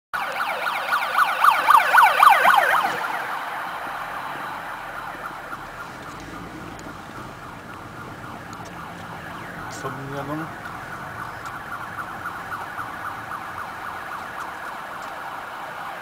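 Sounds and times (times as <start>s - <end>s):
siren yelping: 0.2s - 16.0s.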